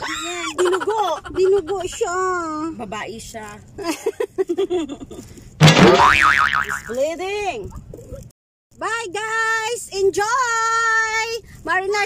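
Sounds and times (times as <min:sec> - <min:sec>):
comic boing sound effect: 0:05.6 - 0:07.0.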